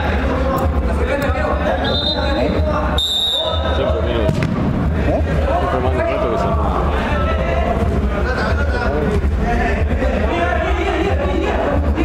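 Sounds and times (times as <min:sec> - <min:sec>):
referee's whistle blast: 0:01.8 - 0:02.4, 0:03.0 - 0:03.9
ball kicked knock: 0:04.3 - 0:04.7.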